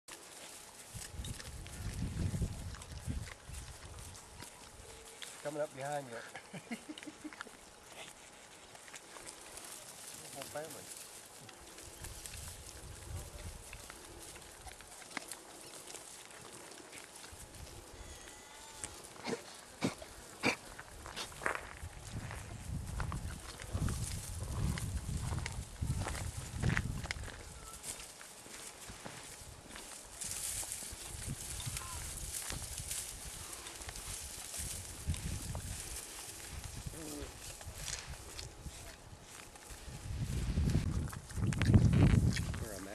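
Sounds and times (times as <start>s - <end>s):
rustling: 0.1s - 42.9s
peccaries grunting: 19.1s - 20.9s.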